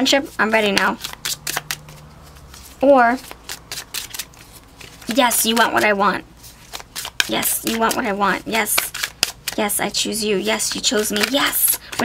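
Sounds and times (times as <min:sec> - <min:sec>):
cards being shuffled: 0:00.4 - 0:12.0.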